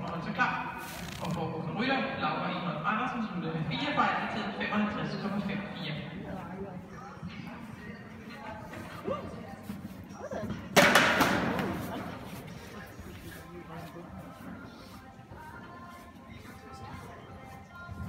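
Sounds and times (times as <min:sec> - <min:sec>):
faint voices: 0:03.6 - 0:18.0.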